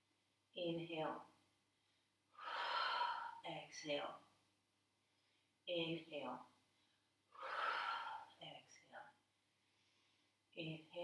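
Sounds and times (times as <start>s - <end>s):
woman exhaling forcefully: 2.4s - 3.4s, 7.3s - 8.4s
short voiced breath: 7.3s - 8.4s.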